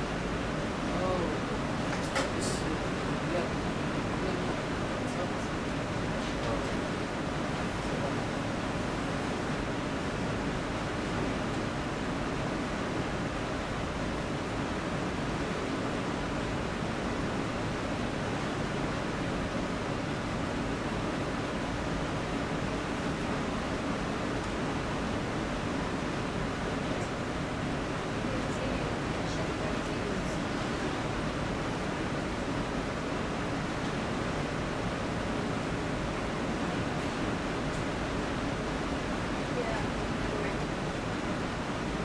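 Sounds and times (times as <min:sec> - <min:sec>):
room tone hiss: 0:00.0 - 0:42.0.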